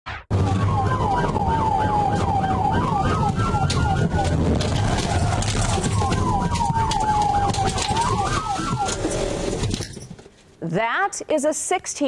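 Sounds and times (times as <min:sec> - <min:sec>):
police car siren: 0:00.3 - 0:09.8
engine and road rumble: 0:00.3 - 0:10.3.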